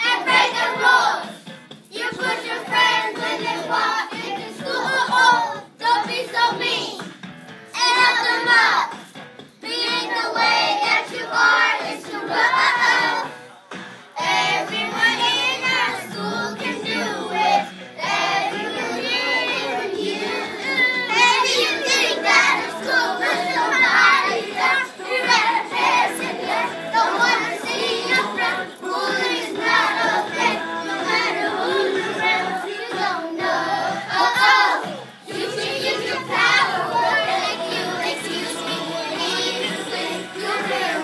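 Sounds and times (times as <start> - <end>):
young children singing: 0.0 - 7.1, 7.7 - 13.5, 14.1 - 41.0.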